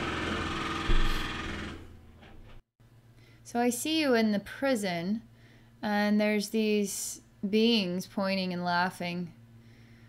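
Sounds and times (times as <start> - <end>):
short low thump: 0.9 - 1.2.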